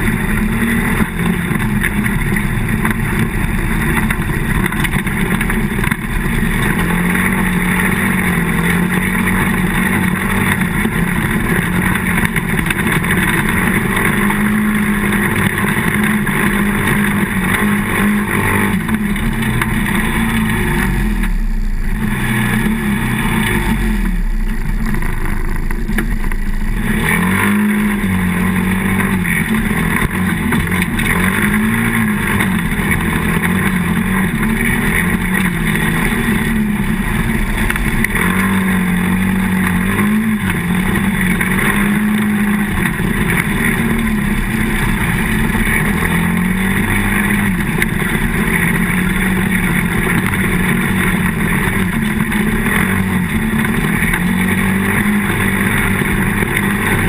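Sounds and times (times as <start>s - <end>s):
quad bike engine running: 0.0s - 57.0s.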